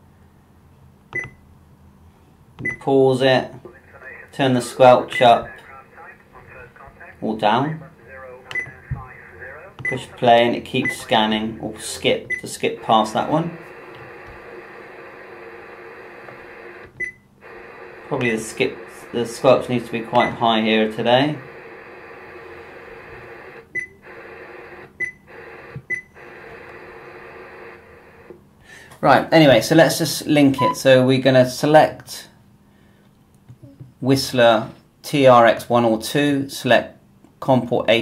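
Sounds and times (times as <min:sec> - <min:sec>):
faint radio scanner hum: 0:02.8 - 0:31.0
radio burst with high beep: 0:05.0 - 0:11.6, 0:17.5 - 0:20.4, 0:30.6 - 0:30.8
short high keypress beep: 0:30.6 - 0:30.8.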